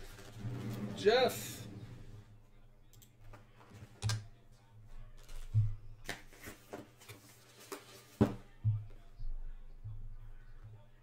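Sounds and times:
faint low hum: 8.4 - 11.0.

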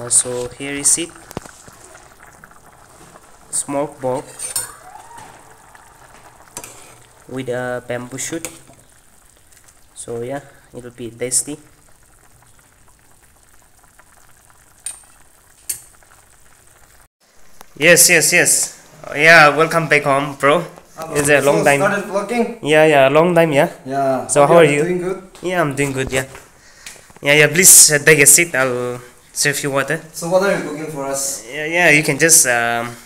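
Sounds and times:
pot boiling and bubbling: 0.0 - 23.3, 24.5 - 33.0.

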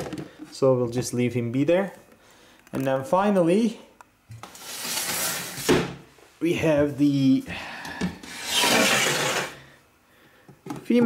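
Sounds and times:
glass door scraping along track: 8.3 - 9.6.

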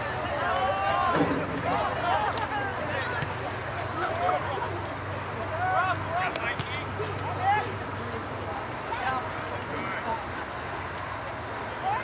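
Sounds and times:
distant people shouting: 0.0 - 8.0.

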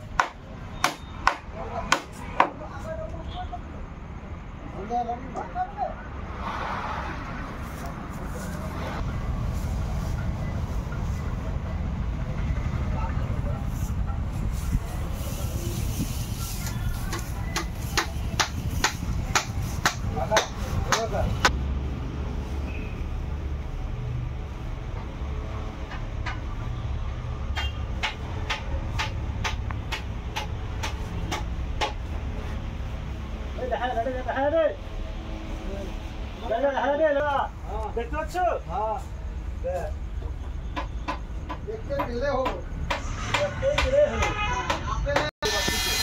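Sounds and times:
sharp knocks: 0.1 - 2.6, 27.5 - 32.1, 40.4 - 45.3.

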